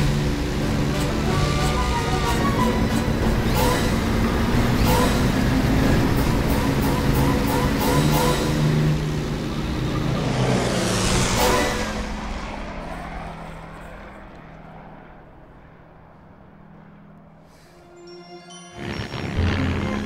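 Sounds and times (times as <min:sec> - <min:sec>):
biplane engine drone passing: 0:00.0 - 0:20.0.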